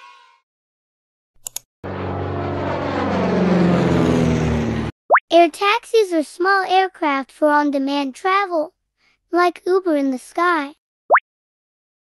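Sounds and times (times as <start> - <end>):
propeller aircraft engine drone: 1.8 - 5.0.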